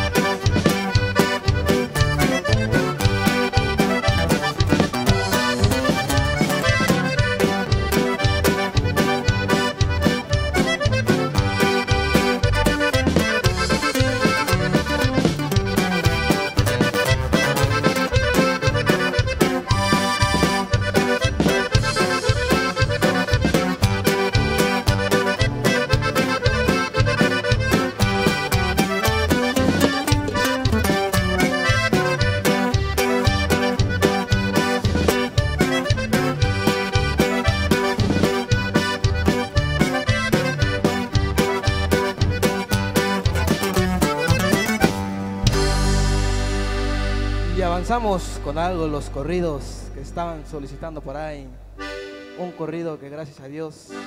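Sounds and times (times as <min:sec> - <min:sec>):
drums: 0:00.0 - 0:52.4
electric bass: 0:00.0 - 0:52.5
button accordion melody: 0:00.0 - 0:54.0
guitar: 0:00.0 - 0:54.0.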